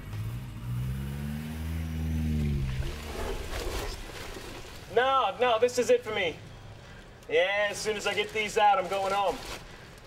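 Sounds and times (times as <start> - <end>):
car engine pulling away: 0.0 - 4.0.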